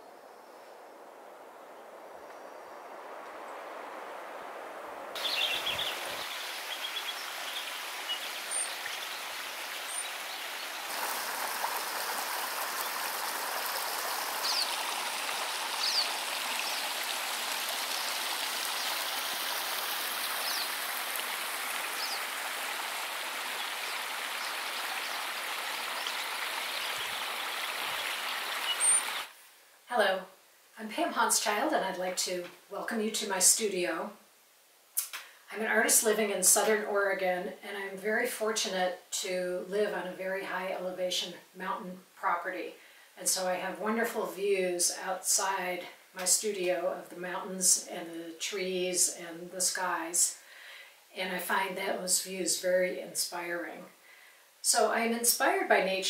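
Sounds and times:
stream splashing over rocks: 0:03.2 - 0:29.3
high bird chirps: 0:05.2 - 0:10.9.

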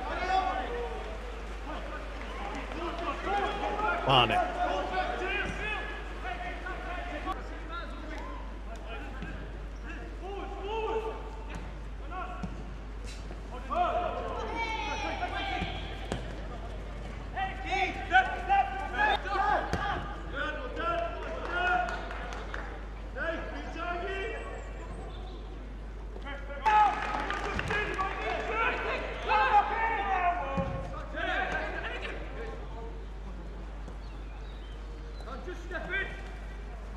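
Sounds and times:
players calling and shouting: 0:00.0 - 0:21.7.

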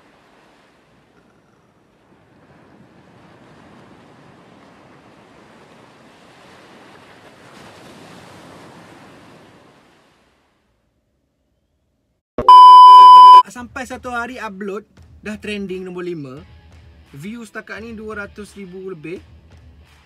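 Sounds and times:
television test tone beep: 0:12.4 - 0:13.4.

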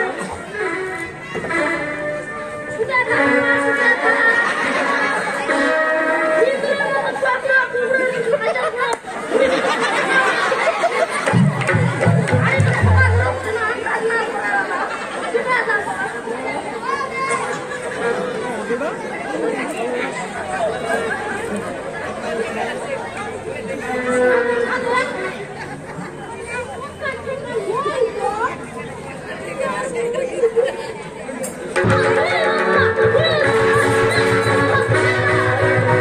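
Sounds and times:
crowd chattering: 0:00.0 - 0:36.0.

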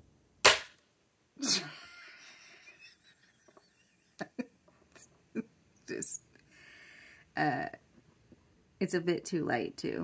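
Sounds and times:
person laughing: 0:01.4 - 0:04.5.

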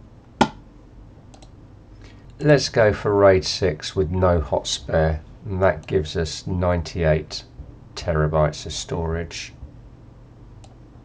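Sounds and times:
computer mouse clicks: 0:01.3 - 0:01.6, 0:10.6 - 0:10.8.

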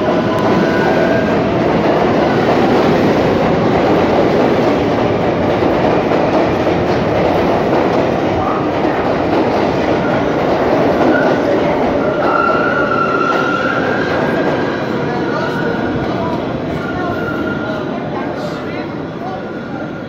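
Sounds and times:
subway train wheels on rail: 0:00.0 - 0:20.0.

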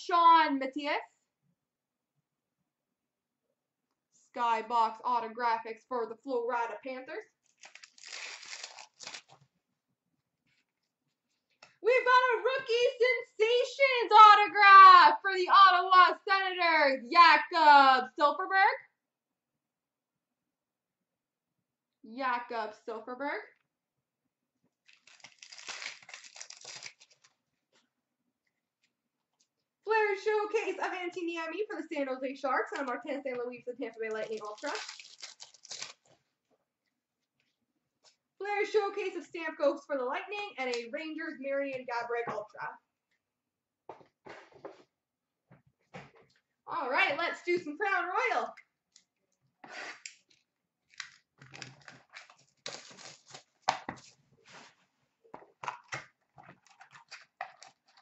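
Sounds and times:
plastic wrapper crinkling and tearing: 0:07.4 - 0:09.5, 0:24.8 - 0:27.5, 0:34.1 - 0:36.2, 0:50.0 - 0:54.2, 0:55.8 - 0:58.0.

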